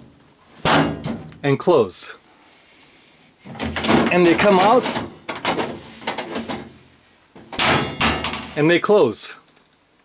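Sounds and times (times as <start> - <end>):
filing cabinet door rattling open: 3.5 - 6.7, 7.4 - 8.6.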